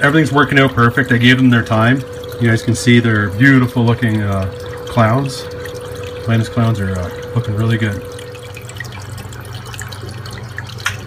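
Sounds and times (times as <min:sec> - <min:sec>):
low steady hum: 0:00.0 - 0:11.0
water trickling and splashing: 0:00.0 - 0:11.0.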